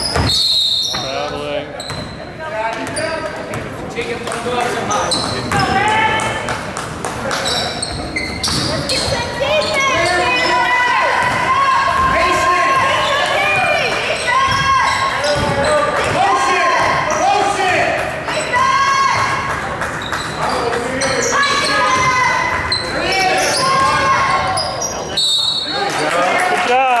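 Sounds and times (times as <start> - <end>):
sneakers squeaking on hardwood floor: 0.0 - 3.7, 4.8 - 5.9, 7.3 - 16.2, 20.0 - 25.7
basketball dribbling: 11.2 - 16.2.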